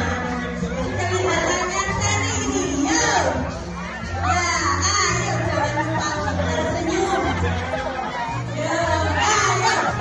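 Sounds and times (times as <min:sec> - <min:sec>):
excited overlapping voices: 0:00.0 - 0:10.0
music with bass line: 0:00.0 - 0:10.0.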